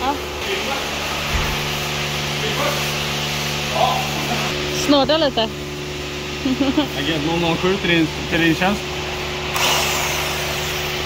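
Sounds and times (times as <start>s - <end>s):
steady mechanical hum: 0.0s - 11.0s.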